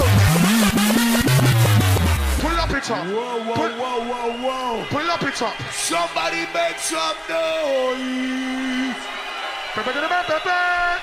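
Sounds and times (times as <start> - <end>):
drum and bass music: 0.0 - 3.0.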